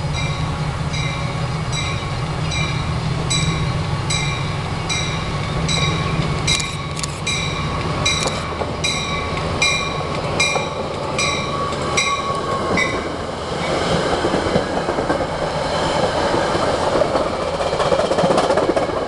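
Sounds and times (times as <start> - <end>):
locomotive bell ringing: 0.0 - 13.2
diesel locomotive engine drone: 0.0 - 19.0
train wheels rumbling on rails: 0.0 - 19.0.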